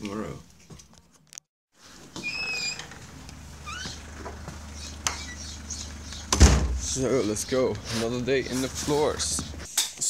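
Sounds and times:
birds calling: 2.6s - 9.7s.

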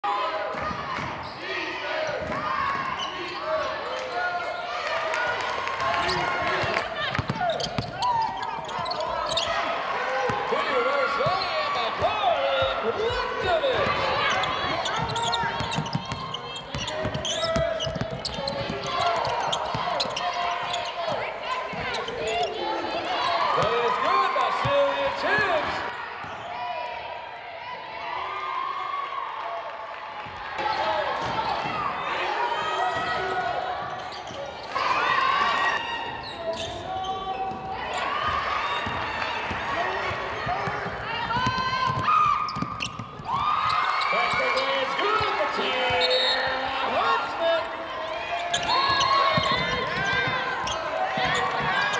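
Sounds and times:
voices echoing in gym: 0.0s - 51.9s.

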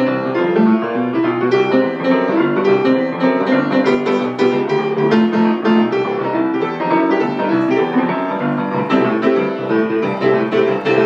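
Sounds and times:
jazz swing piano: 0.0s - 11.0s.

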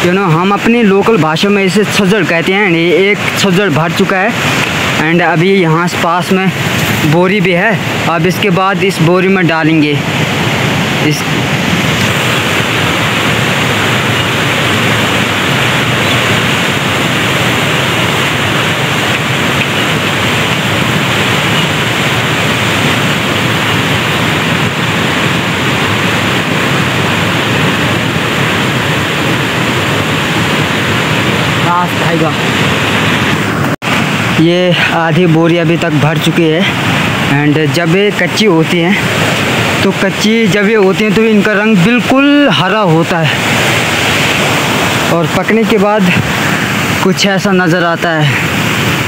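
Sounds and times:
river water roaring: 0.0s - 49.0s.

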